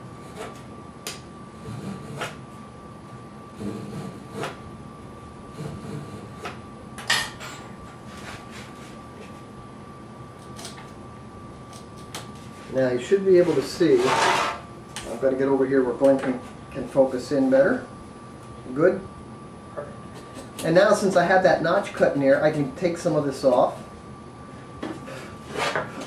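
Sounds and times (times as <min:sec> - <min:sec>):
saw scraping wood: 0:13.4 - 0:14.6, 0:25.5 - 0:25.9.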